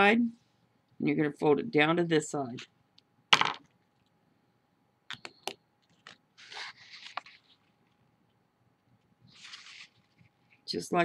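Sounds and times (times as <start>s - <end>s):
paper rustling as fold is pressed: 6.0s - 7.8s, 9.3s - 10.5s.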